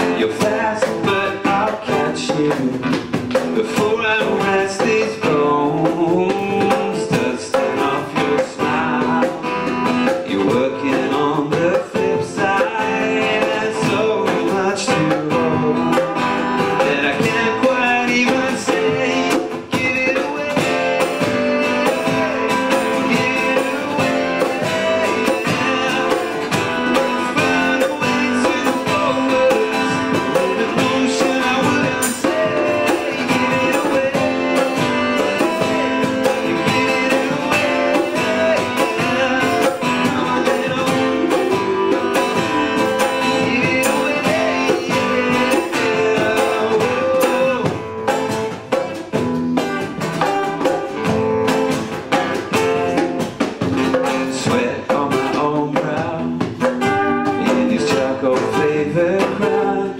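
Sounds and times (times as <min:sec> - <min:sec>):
acoustic guitars strumming: 0:00.0 - 0:59.9.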